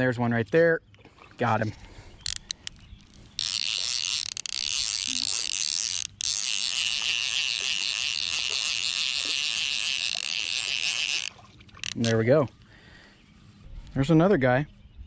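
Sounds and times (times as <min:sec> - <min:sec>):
fly reel ratchet buzzing: 0:02.2 - 0:12.1.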